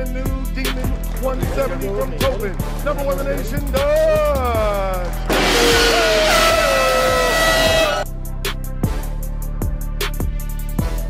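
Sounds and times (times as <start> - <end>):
hip hop music with steady beat: 0.0 - 11.0
gong crash ringing: 5.3 - 8.0.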